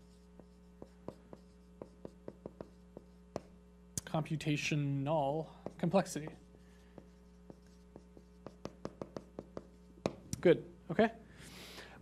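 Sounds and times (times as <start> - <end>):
marker writing on whiteboard: 0.0 - 3.6, 5.4 - 10.3
low electrical hum: 0.0 - 12.0.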